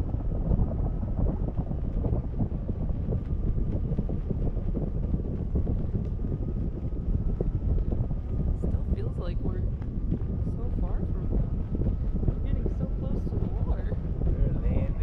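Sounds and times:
faint high whine: 0:00.0 - 0:15.0
wind buffeting microphone: 0:00.0 - 0:15.0.

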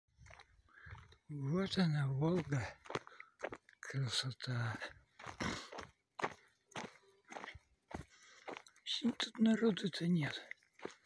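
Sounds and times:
footsteps on stony dirt path: 0:00.2 - 0:11.0.

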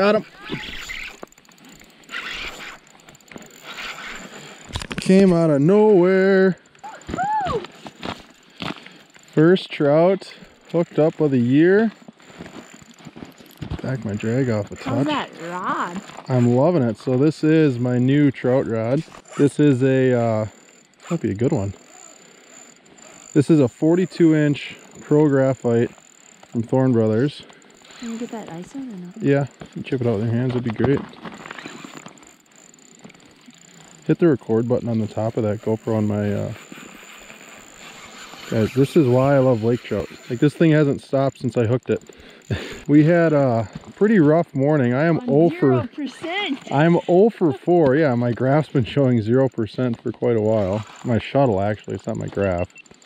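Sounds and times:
fishing reel clicking: 0:00.0 - 0:53.0
person whooping: 0:06.8 - 0:07.8.

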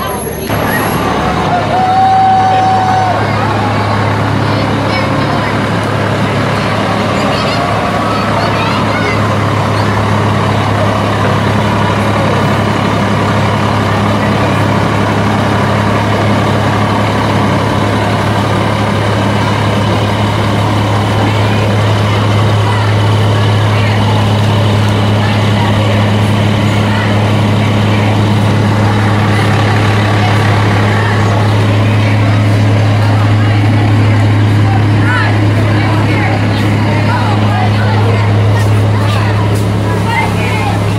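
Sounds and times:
diesel engine low hum: 0:00.0 - 0:40.9.

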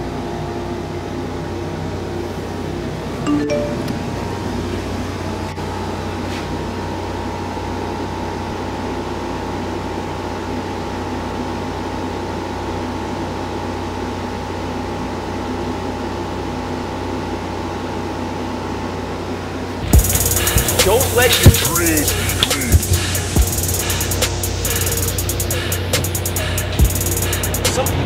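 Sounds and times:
machine hum and hiss: 0:03.9 - 0:28.0.

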